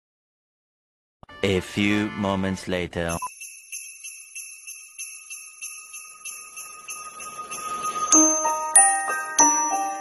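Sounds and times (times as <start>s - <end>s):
small bells jingling: 3.2s - 10.0s.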